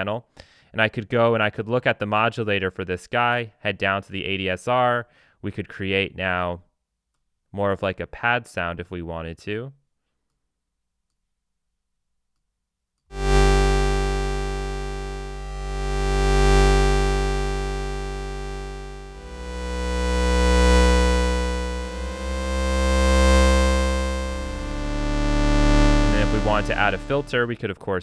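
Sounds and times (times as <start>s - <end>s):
synthesizer held notes: 13.1s - 27.6s.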